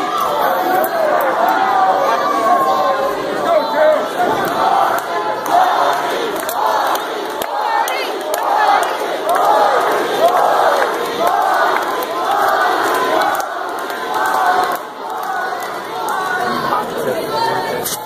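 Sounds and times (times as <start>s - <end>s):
crowd chanting in rhythm: 0.0s - 18.0s.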